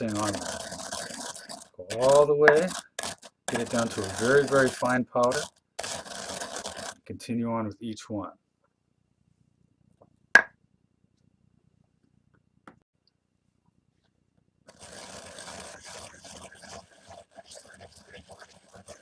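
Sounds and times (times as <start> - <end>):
stone pestle grinding resin: 0.0 - 7.1, 14.7 - 19.0.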